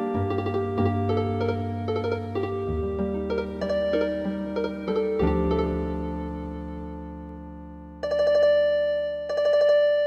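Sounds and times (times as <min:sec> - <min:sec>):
wavering keyboard notes: 0:00.0 - 0:10.0.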